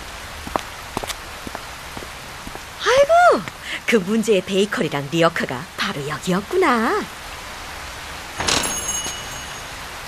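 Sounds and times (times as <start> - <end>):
steady rain falling: 0.0 - 10.0.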